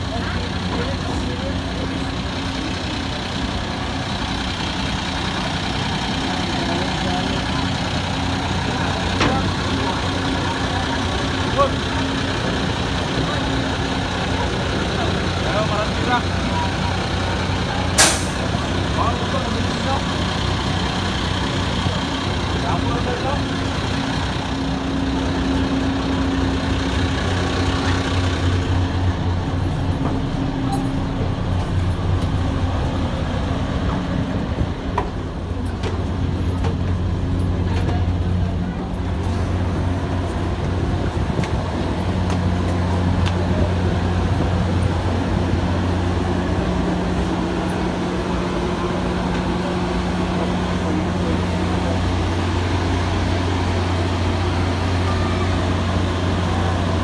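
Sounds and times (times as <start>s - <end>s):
heavy engines idling: 0.0s - 57.0s
people talking: 0.0s - 57.0s
short sharp hiss: 18.0s - 18.4s.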